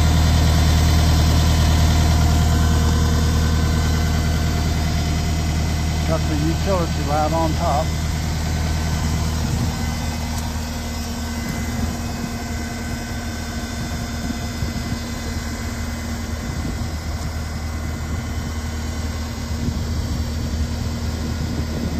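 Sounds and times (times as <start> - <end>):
diesel engine idling: 0.0 - 21.9.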